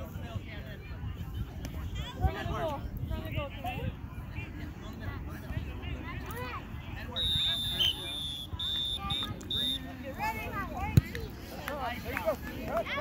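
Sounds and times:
people talking: 0.0s - 13.0s
referee's whistle blasts: 7.2s - 9.9s.

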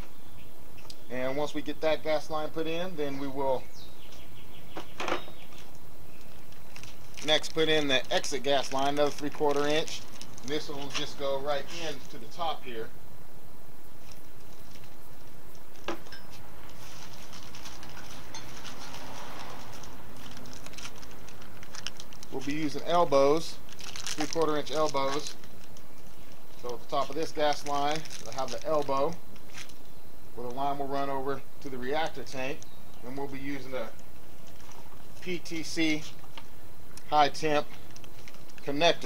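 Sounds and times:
steady background hiss: 0.0s - 39.0s
steady background noise: 0.0s - 39.0s
plastic package rustling: 5.4s - 12.2s, 14.0s - 30.6s, 32.6s - 39.0s.

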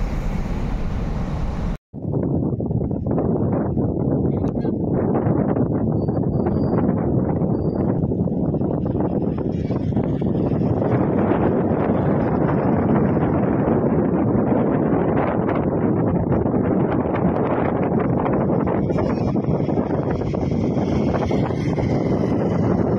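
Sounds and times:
wind buffeting microphone: 0.0s - 22.9s.

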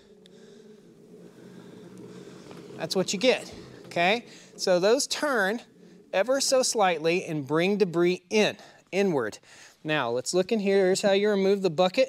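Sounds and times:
push sweeper brushes whirring: 0.0s - 7.2s.

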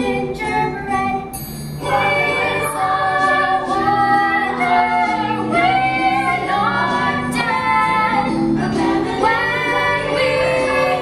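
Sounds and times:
musical accompaniment: 0.0s - 11.0s
opera voices singing: 1.8s - 11.0s.

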